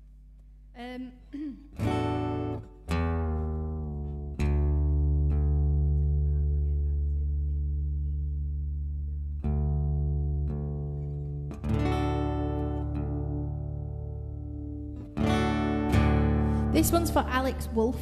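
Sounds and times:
acoustic guitar chords ringing: 1.6 - 18.0.

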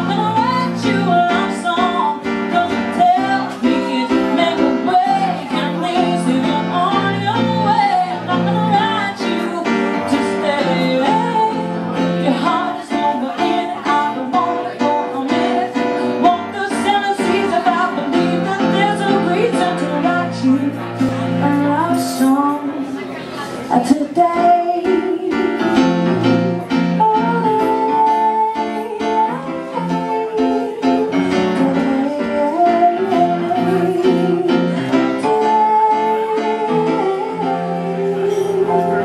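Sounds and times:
woman singing: 0.0 - 23.0, 23.6 - 39.0
grand piano playing chords: 0.0 - 39.0.

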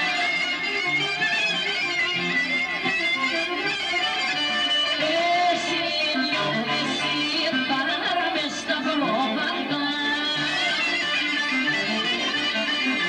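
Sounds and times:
electric guitar: 0.0 - 13.0
keyboard: 0.0 - 13.0
clarinet melody: 10.3 - 13.0.

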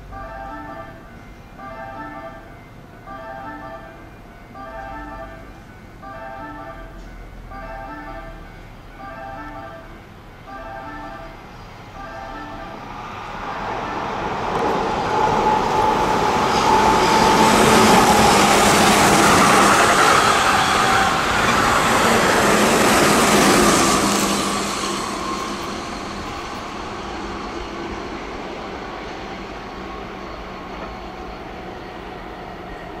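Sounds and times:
train wheels on rails: 11.4 - 33.0.

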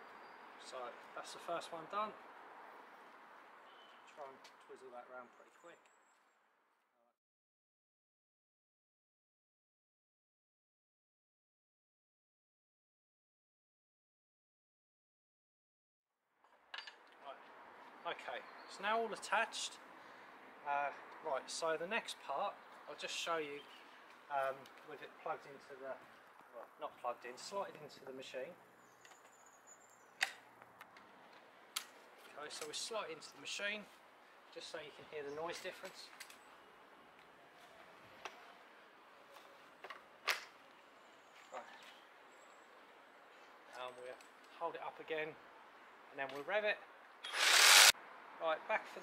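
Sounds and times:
faint background noise: 0.0 - 7.2, 16.4 - 49.0.

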